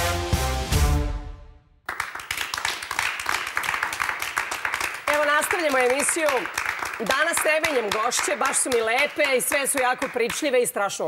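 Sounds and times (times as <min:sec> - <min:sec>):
audience applause: 0:01.9 - 0:10.5.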